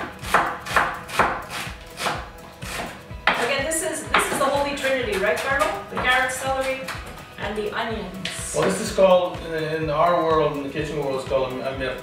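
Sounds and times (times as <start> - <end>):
knife chopping on wooden board: 0.0 - 7.2.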